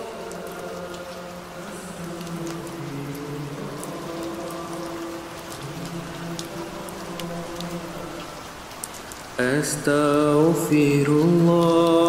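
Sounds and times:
rain on a hard surface: 0.0s - 12.0s.

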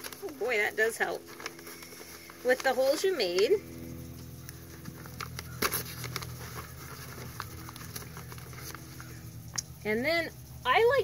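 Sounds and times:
paper bag crinkling: 0.0s - 3.5s, 4.7s - 9.2s
low hum: 0.0s - 11.0s
light tapping on a paper bag: 4.5s - 9.2s.

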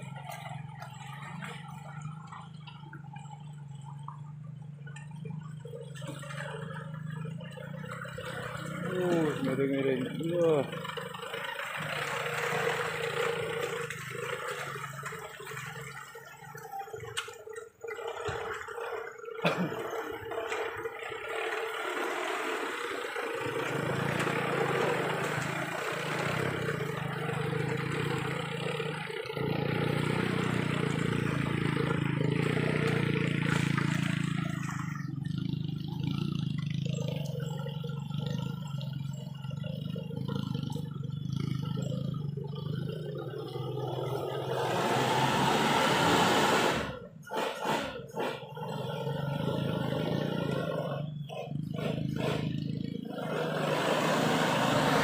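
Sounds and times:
vehicle engine under load: 0.0s - 55.0s.

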